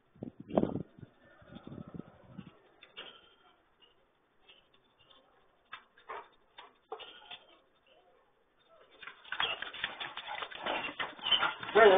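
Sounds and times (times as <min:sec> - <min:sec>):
dog paws trotting on ground: 0:09.0 - 0:11.9.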